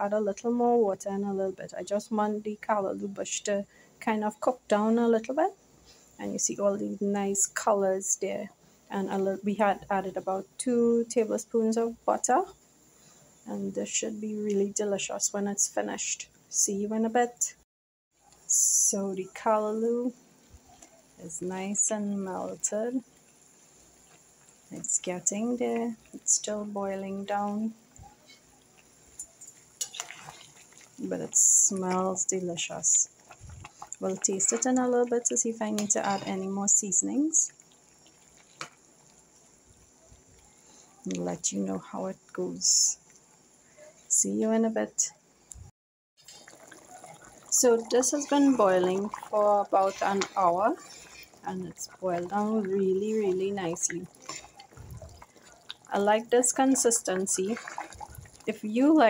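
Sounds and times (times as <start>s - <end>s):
pot bubbling at the boil: 0.0s - 45.5s, 46.2s - 59.0s
metal spoon stirring: 28.2s - 32.0s, 33.2s - 35.1s, 35.7s - 36.5s, 46.2s - 58.8s.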